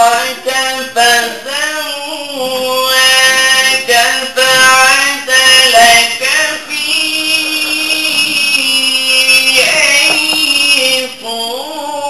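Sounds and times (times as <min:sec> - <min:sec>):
man reciting into a microphone: 0:00.0 - 0:12.0.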